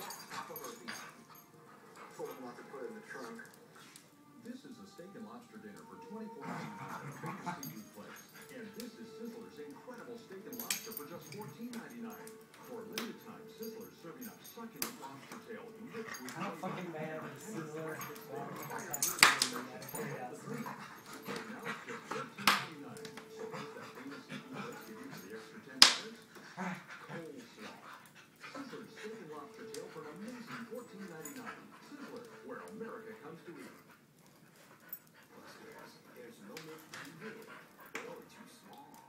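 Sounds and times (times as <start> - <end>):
dogs making small vocal sounds: 0.0 - 4.4, 5.9 - 39.0.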